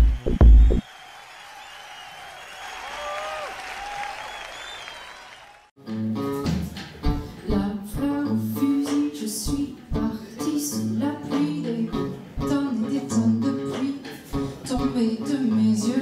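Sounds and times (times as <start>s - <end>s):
electronic music: 0.0s - 0.8s
audience applause: 0.0s - 5.7s
audience whistles: 0.0s - 5.7s
guitar: 5.8s - 16.0s
woman singing: 7.4s - 16.0s.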